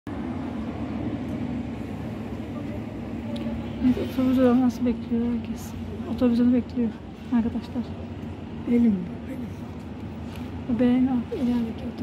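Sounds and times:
city traffic rumble: 0:00.1 - 0:12.0.

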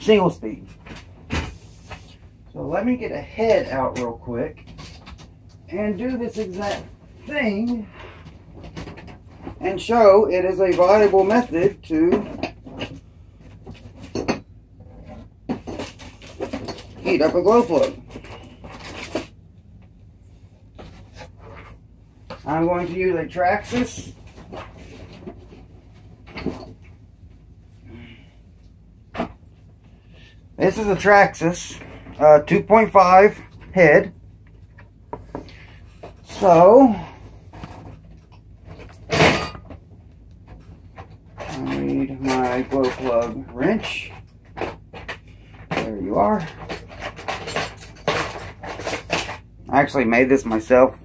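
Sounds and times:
rustling scraping handling noise: 0:00.1 - 0:50.9.

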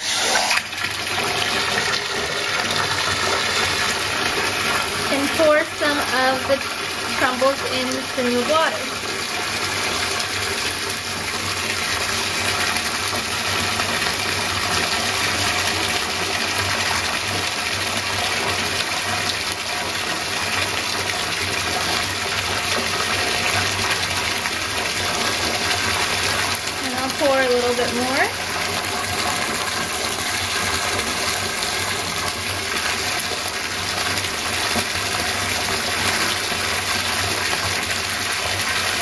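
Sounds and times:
tap water splashing into tub: 0:06.0 - 0:39.0.

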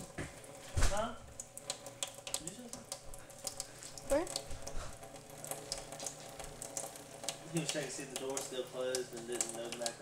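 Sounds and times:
faucet water into steel sink: 0:00.0 - 0:10.0.

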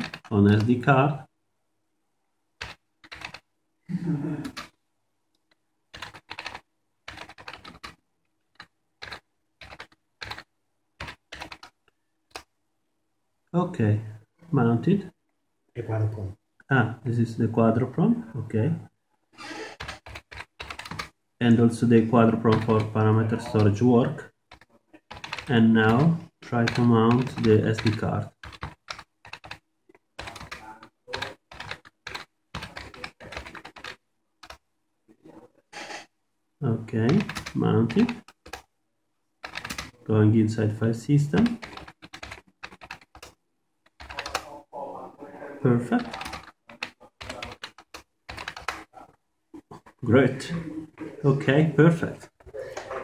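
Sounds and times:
computer keyboard typing: 0:00.0 - 0:01.0, 0:02.6 - 0:03.5, 0:04.4 - 0:04.8, 0:05.9 - 0:12.5, 0:19.6 - 0:21.2, 0:22.2 - 0:23.8, 0:24.4 - 0:34.6, 0:37.0 - 0:38.7, 0:39.4 - 0:40.0, 0:41.2 - 0:44.6, 0:45.8 - 0:48.9.

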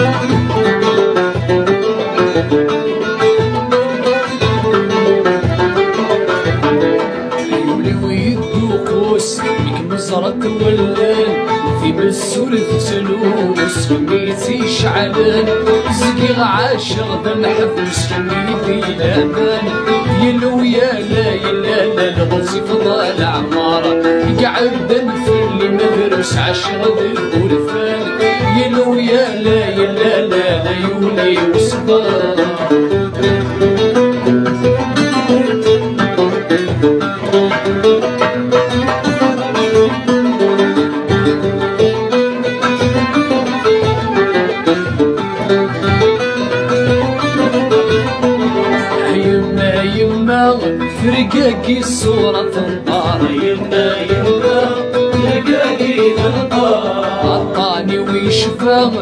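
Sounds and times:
plucked strings: 0:00.0 - 0:59.0
man singing: 0:04.0 - 0:34.2, 0:35.0 - 0:41.8, 0:47.0 - 0:59.0.

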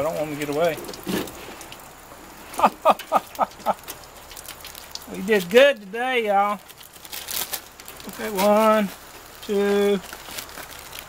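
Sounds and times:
running water: 0:00.0 - 0:11.0
man laughing: 0:02.6 - 0:03.9.

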